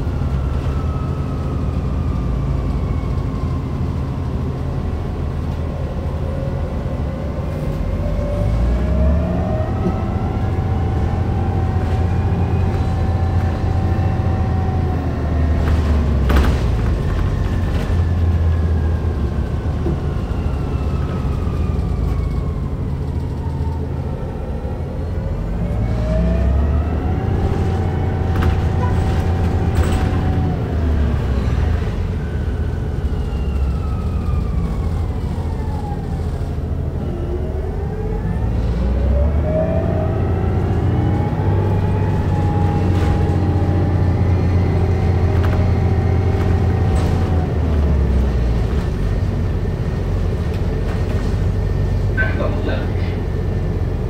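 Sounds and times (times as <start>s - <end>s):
electric bus drive whine: 0.0s - 54.0s
low diesel engine drone: 0.0s - 54.0s.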